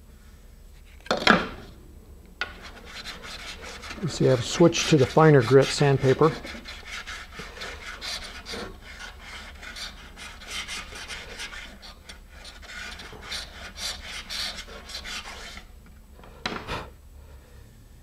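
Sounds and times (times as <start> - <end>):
sandpaper rasping on epoxy: 2.4 - 15.7.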